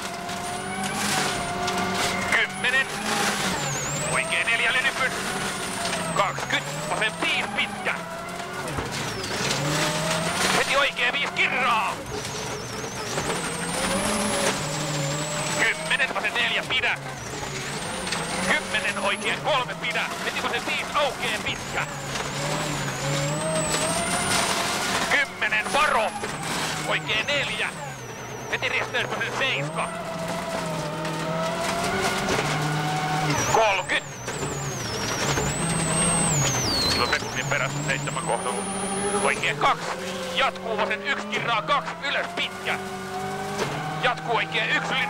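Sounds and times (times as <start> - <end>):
road noise on gravel: 0.0 - 45.0
turbocharged engine at high revs: 0.0 - 45.0.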